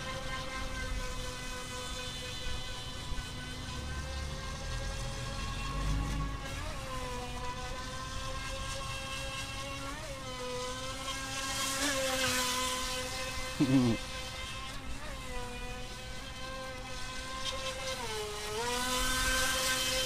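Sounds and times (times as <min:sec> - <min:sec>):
electric motor whining: 0:00.0 - 0:20.0.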